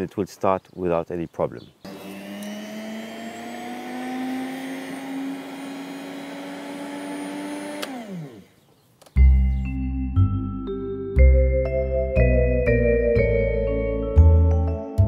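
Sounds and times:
electric lawn mower motor: 1.8 - 8.6
music: 9.2 - 15.0.

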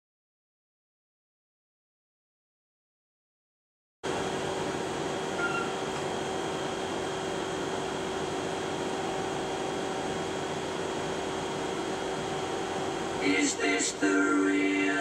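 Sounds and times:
fan humming: 4.1 - 15.0.

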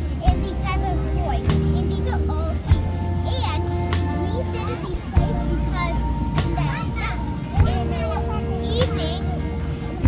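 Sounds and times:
background music with low bass: 0.0 - 10.0
children chattering: 0.0 - 10.0.

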